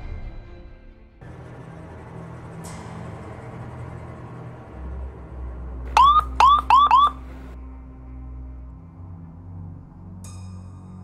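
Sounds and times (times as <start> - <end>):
low vehicle rumble: 1.2 - 10.2
electronic rising chirps: 5.9 - 7.3.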